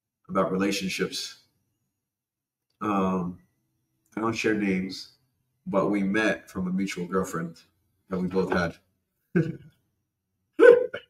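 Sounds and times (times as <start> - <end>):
man laughing: 8.4 - 8.7, 9.4 - 9.7.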